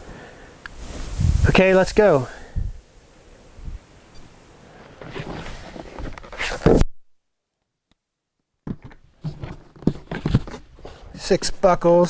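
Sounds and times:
plastic case rustling and knocking: 8.6 - 10.8.

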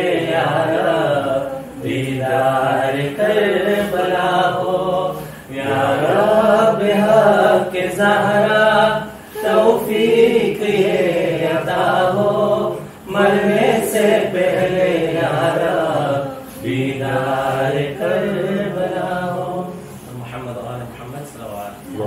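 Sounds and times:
breaths: 5.1 - 5.5.

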